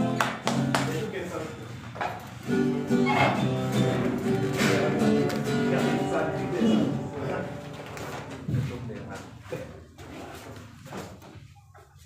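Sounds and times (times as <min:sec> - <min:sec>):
acoustic guitar strumming: 0:00.0 - 0:08.8.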